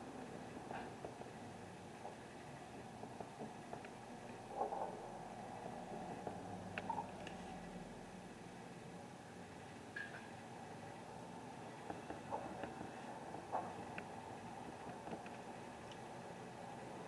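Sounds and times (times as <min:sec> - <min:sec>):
faint background noise: 0:00.0 - 0:17.0
faint clicks and knocks: 0:00.3 - 0:07.6, 0:11.7 - 0:16.3.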